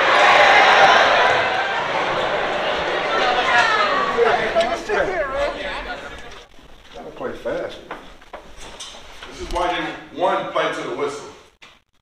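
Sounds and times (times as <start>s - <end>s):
indistinct voices: 0.0s - 8.2s.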